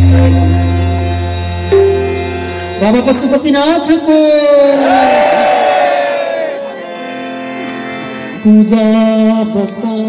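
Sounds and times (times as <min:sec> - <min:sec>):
devotional music with deep drone: 0:00.0 - 0:04.7, 0:06.2 - 0:10.0.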